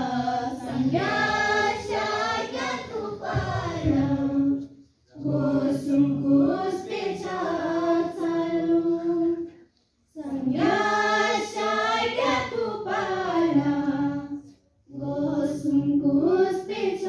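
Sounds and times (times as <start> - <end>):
students singing unaccompanied: 0.0 - 17.0.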